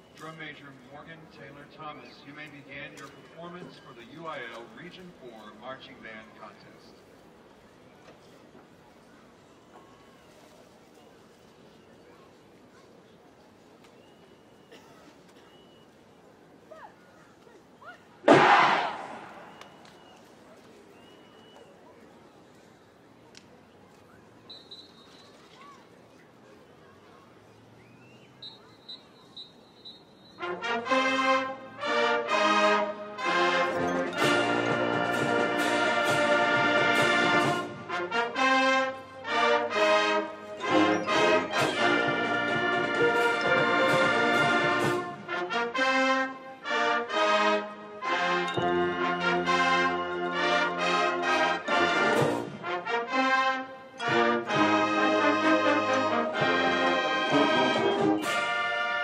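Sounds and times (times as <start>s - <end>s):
marching band playing: 18.3s - 19.9s, 30.4s - 59.0s.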